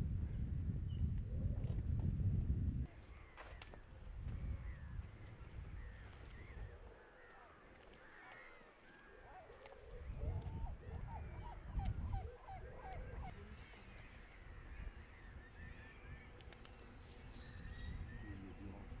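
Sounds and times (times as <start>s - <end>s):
birds honking: 8.5s - 14.9s.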